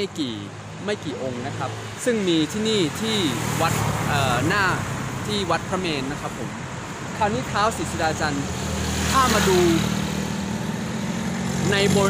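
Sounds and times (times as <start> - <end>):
man talking: 0.0 - 9.9, 11.6 - 12.0.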